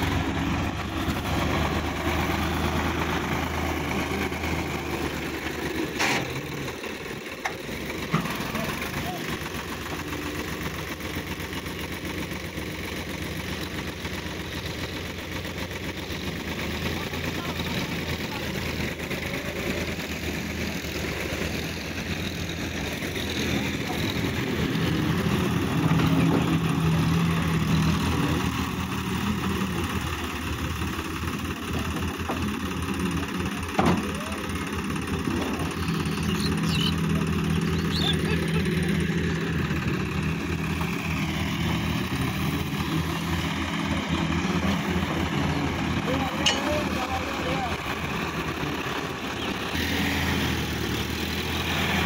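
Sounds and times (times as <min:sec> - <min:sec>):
tractor diesel engine under load: 0:00.0 - 0:52.0.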